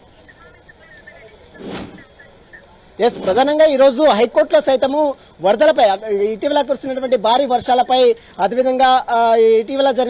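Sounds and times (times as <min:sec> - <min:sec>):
short whoosh effect: 0:01.6 - 0:02.0, 0:03.0 - 0:03.5.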